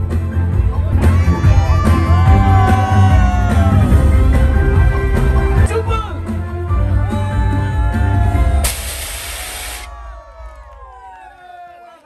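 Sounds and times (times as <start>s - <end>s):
faint crowd noise: 0.0s - 5.7s
gas jets hissing: 8.6s - 9.9s.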